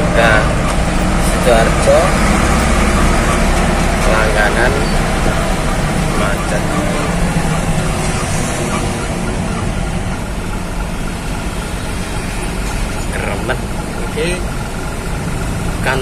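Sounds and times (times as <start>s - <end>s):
truck engine running: 0.0s - 16.0s.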